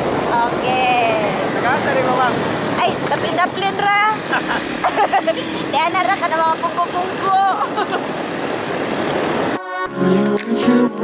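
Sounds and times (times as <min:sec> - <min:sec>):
two people talking: 0:00.3 - 0:04.6
wind on microphone: 0:05.6 - 0:09.6.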